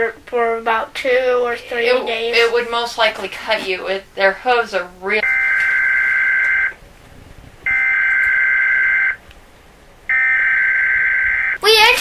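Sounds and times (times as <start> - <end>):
high-pitched electronic beeps: 5.2 - 6.8, 7.7 - 9.2.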